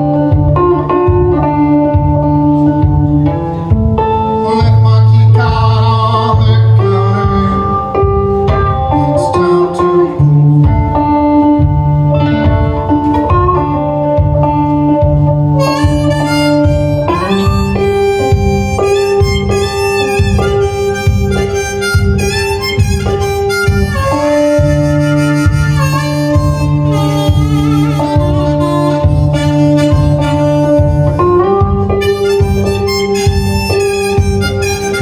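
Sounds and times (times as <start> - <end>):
blues harmonica: 0.0 - 35.0
fingerpicked resonator guitar: 0.0 - 35.0.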